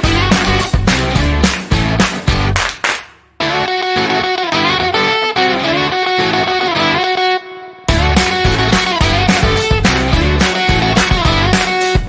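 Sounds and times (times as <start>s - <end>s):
guitar-led music with steady beat: 0.0s - 2.6s, 3.4s - 12.0s.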